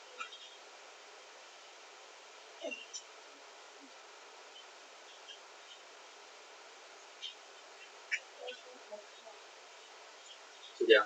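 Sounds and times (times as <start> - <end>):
faint whir of desk fans: 0.0 - 11.0.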